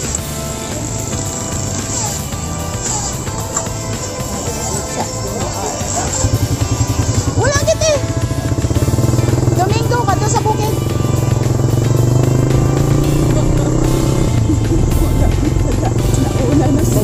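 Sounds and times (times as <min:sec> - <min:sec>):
motorcycle engine running: 0:00.0 - 0:17.0
music playing: 0:00.0 - 0:17.0.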